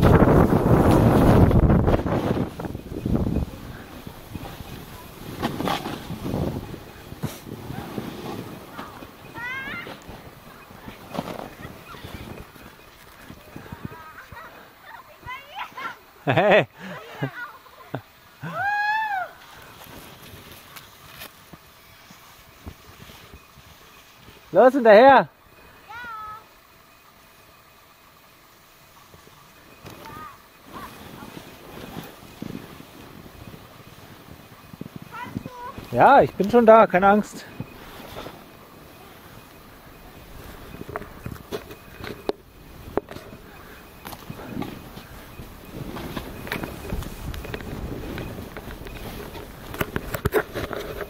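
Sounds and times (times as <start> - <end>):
crunching and scraping in snow: 0.0 - 16.0, 19.4 - 24.9, 28.5 - 51.0
distant high-pitched shouts: 18.4 - 19.4
footsteps crunching through snow: 29.8 - 51.0.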